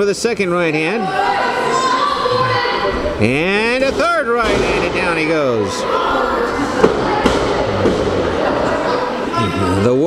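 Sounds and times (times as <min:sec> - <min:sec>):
murmur of indoor crowd: 0:00.0 - 0:10.0.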